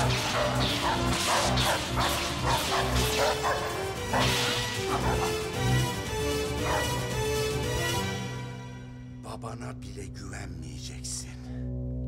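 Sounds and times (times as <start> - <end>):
laser sword swishes and clashes: 0.0 - 3.2
action music with pulsing bass: 0.0 - 9.2.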